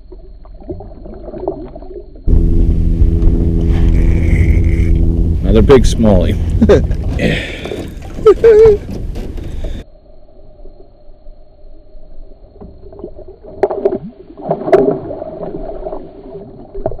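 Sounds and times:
water splashing and gurgling: 0:00.0 - 0:04.9, 0:06.4 - 0:09.8, 0:12.7 - 0:17.0
steady low hum: 0:02.3 - 0:10.2.

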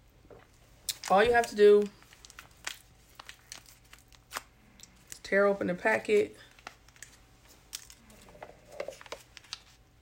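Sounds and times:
packet crinkling and tearing: 0:00.8 - 0:05.3, 0:06.1 - 0:09.8.

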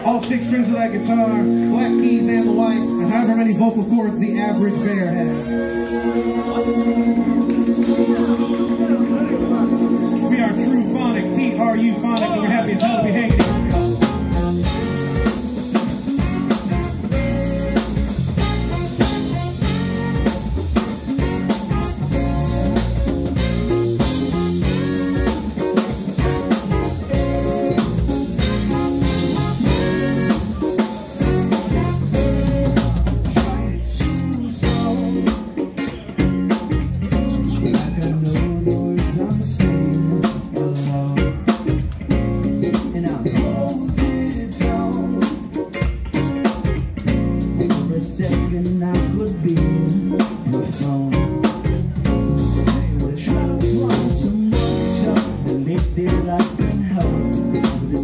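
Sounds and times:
electric bass: 0:00.0 - 0:58.0
electric guitar: 0:00.0 - 0:58.0
keyboard: 0:00.0 - 0:58.0
drum kit beat: 0:03.0 - 0:58.0.

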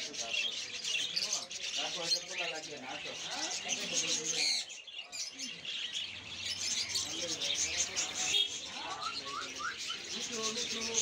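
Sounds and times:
small birds chirping: 0:00.0 - 0:11.0.

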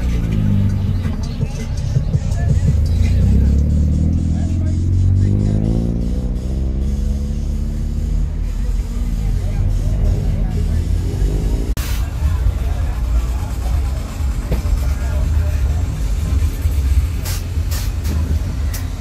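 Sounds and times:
motorcycle engine revving: 0:00.0 - 0:11.8
indistinct voices: 0:00.0 - 0:19.0
loud music: 0:00.0 - 0:19.0.

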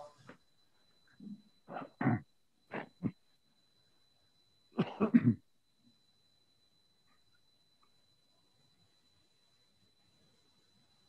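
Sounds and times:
person coughing: 0:01.7 - 0:03.1, 0:04.8 - 0:05.4.

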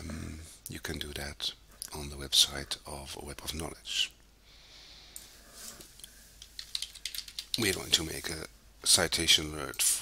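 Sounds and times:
computer keyboard typing: 0:06.4 - 0:07.9.

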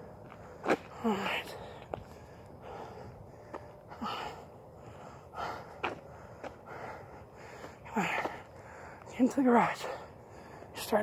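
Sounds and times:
man breathing hard and grunting: 0:00.5 - 0:09.0
faint footstep clicks: 0:05.7 - 0:06.7.

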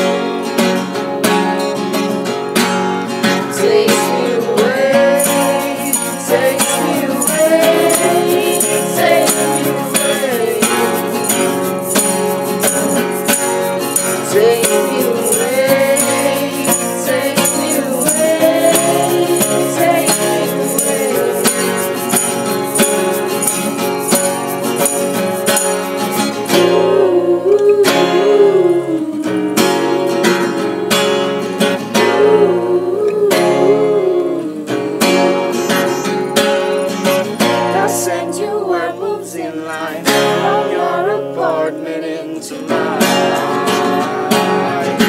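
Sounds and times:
acoustic guitars strumming: 0:00.0 - 0:45.0
people singing together: 0:03.3 - 0:30.6, 0:31.9 - 0:36.2, 0:37.3 - 0:45.0
light jingling: 0:35.5 - 0:37.3.

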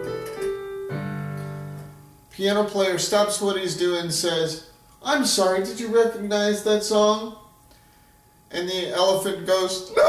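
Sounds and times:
slow piano chords: 0:00.0 - 0:02.3.

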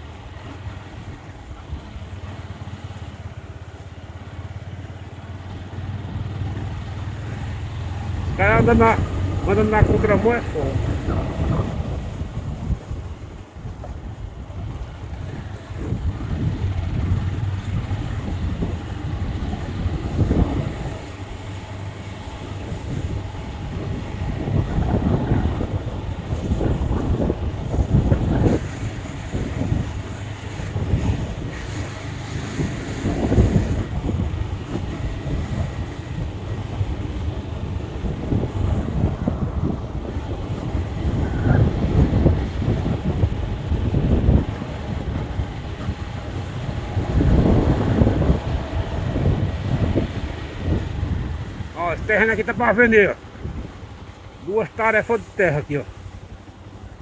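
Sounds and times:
vehicle rumble on dirt road: 0:00.0 - 0:57.0
wind buffeting microphone: 0:00.0 - 0:57.0.

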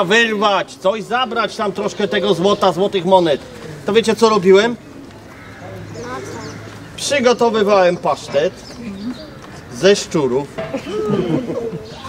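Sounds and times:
children's voices murmuring: 0:00.0 - 0:12.0.

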